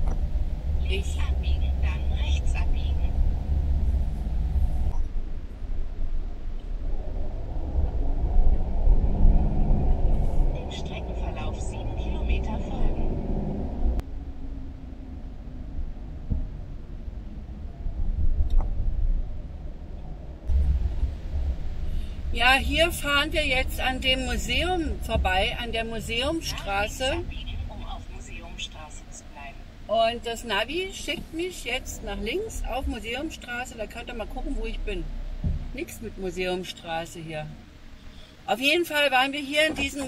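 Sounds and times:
engine and tyres rumbling: 0.0s - 40.0s.

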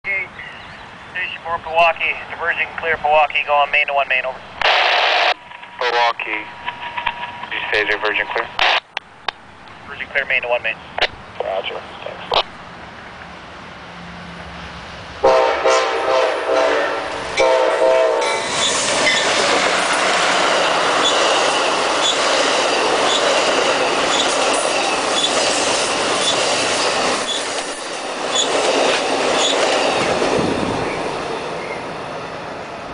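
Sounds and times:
train rumbling past: 0.1s - 32.9s
train horn blasts: 15.2s - 18.4s
train wheels clicking on rails: 18.2s - 31.8s.

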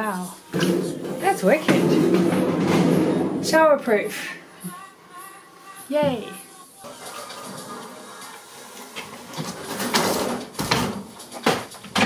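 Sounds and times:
metal panel scraping and rattling: 0.5s - 3.7s, 9.0s - 10.9s.

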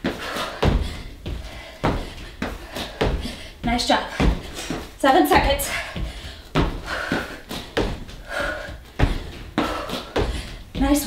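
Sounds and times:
feet thudding on exercise mat: 0.0s - 11.0s.

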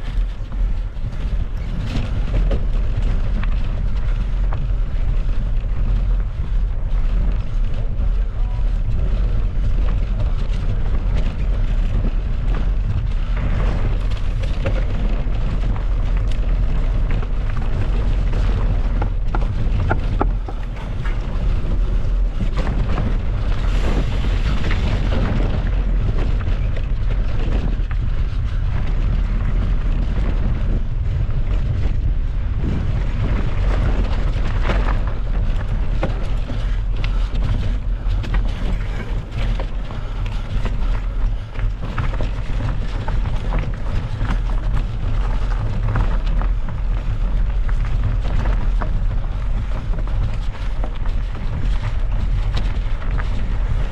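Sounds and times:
bike rattles and knocks: 0.0s - 53.9s
bike tyre noise on dirt: 0.0s - 53.9s
wind rumbling on microphone: 0.0s - 53.9s.

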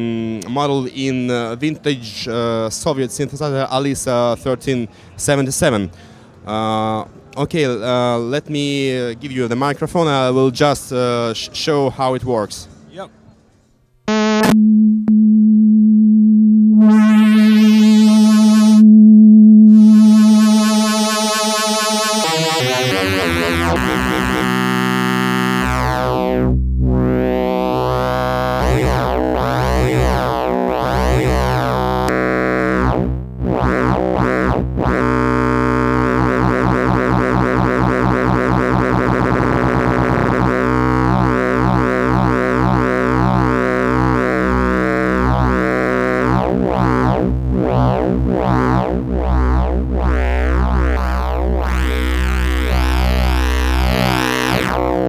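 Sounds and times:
low bass drone: 14.1s - 55.0s
synthesizer tone with shifting overtones: 14.1s - 55.0s.

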